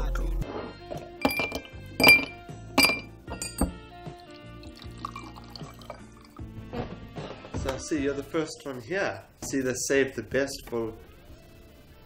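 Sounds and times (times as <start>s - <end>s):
background music: 0.0s - 12.0s
glass tumbler clinking: 1.2s - 3.8s, 4.7s - 6.4s
liquid pouring: 3.6s - 6.7s.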